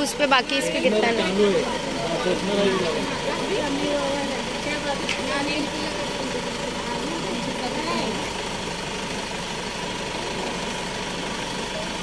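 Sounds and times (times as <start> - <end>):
low voices: 0.0 - 12.0
suv engine idling: 0.0 - 12.0.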